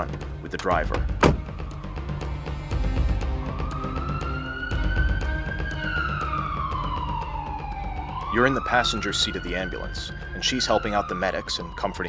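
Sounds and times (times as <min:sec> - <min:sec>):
background music: 0:00.0 - 0:12.0
ambulance siren wailing: 0:01.0 - 0:12.0.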